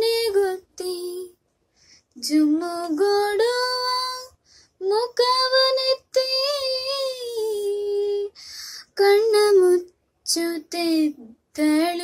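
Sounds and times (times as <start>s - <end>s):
woman singing unaccompanied: 0.0s - 1.4s, 2.2s - 12.0s
singer breathing: 1.6s - 2.2s, 4.4s - 4.8s, 8.4s - 8.9s.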